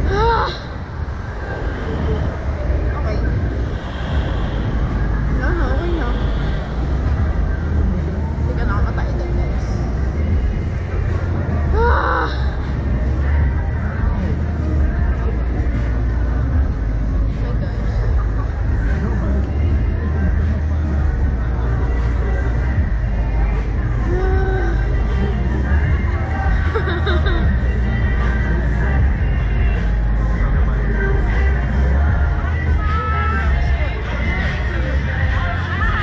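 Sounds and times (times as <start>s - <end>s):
wind rushing over microphone: 0.0s - 11.8s.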